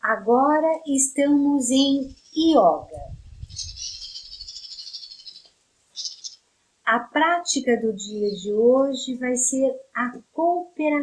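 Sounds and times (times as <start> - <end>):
high rattling hiss like a shaker: 2.1 - 6.4.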